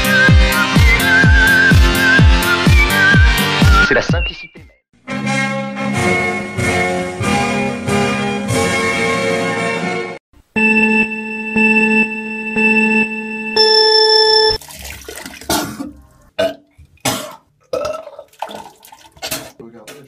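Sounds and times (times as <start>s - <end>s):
pulsing electronic tones: 10.6s - 14.6s
man retching into toilet: 14.7s - 19.6s.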